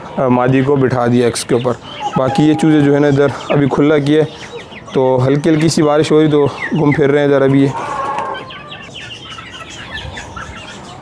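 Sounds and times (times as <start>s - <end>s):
chicks peeping and clucking: 0.0s - 11.0s.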